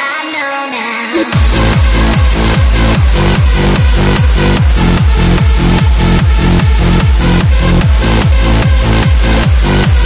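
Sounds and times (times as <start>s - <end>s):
electronic synth layer: 1.2s - 10.0s
kick drum: 1.3s - 10.0s
offbeat bass note: 1.3s - 10.0s.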